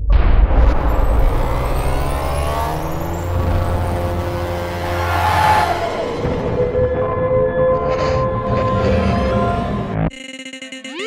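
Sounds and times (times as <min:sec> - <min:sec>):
deep rumble: 0:00.0 - 0:10.0.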